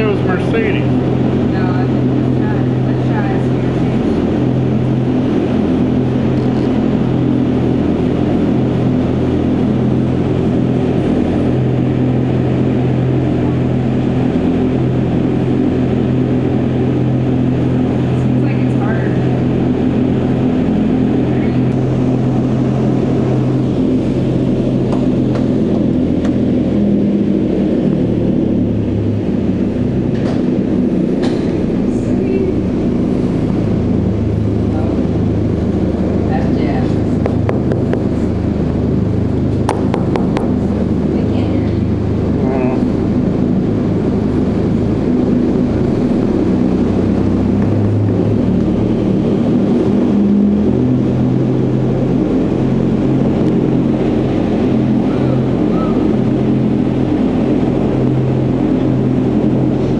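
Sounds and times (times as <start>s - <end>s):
low droning hum: 0.0s - 59.9s
wind tunnel roar: 0.0s - 59.9s.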